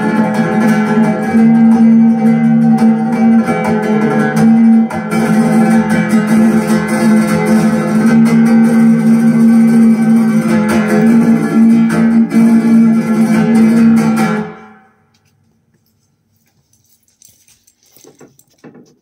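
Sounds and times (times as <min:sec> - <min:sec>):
flamenco guitar music: 0:00.0 - 0:15.2.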